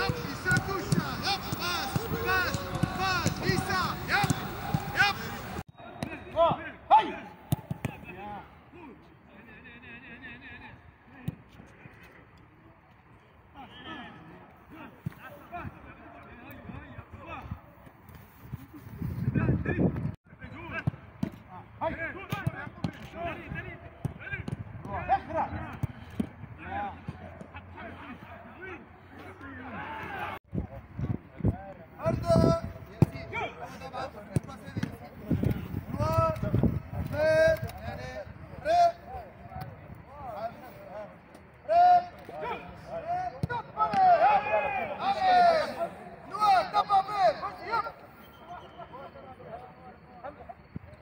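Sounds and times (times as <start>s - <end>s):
men shouting: 0.0s - 5.6s
players shouting: 0.0s - 9.0s, 21.5s - 30.4s, 41.6s - 49.4s.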